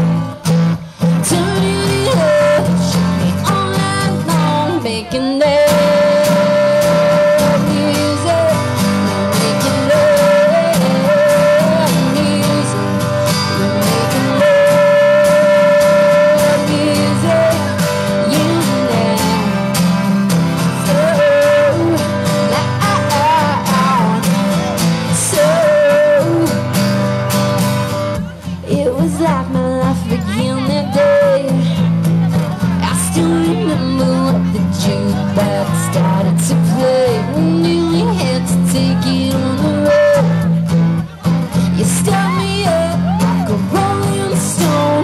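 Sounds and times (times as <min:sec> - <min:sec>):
woman singing lead vocal: 0:00.0 - 0:26.9, 0:28.2 - 0:45.0
strummed acoustic guitar: 0:00.0 - 0:45.0.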